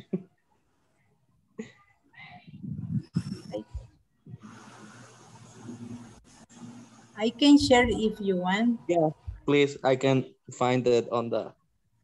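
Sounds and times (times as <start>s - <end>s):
microphone handling noise: 2.5s - 6.2s.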